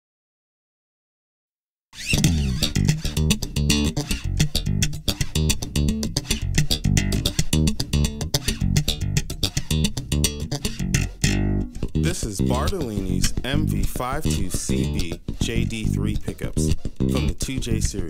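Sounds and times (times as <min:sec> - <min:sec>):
electric bass quick run of notes: 0:02.0 - 0:12.7.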